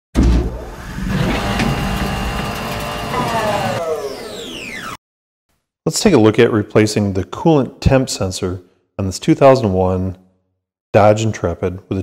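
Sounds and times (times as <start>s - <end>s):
falling pitch glides: 0.6s - 5.0s.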